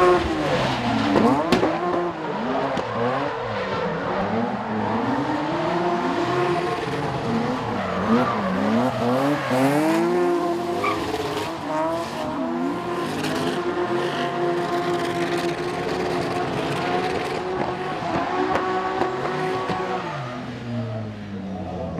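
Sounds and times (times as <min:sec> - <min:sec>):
car engines at high revs: 0:00.0 - 0:21.9
tyre squeal: 0:10.8 - 0:11.4.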